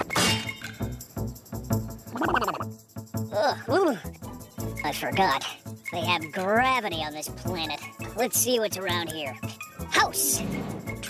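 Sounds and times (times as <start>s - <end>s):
background music: 0.0s - 11.0s
croaky cartoon creature cries: 2.1s - 2.7s.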